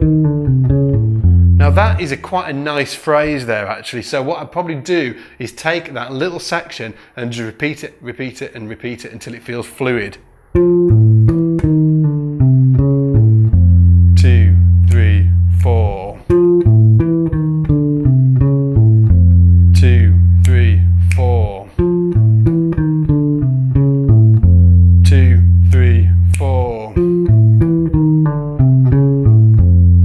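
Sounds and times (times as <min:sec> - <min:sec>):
electric bass guitar lick: 0:00.0 - 0:02.6, 0:10.2 - 0:30.0.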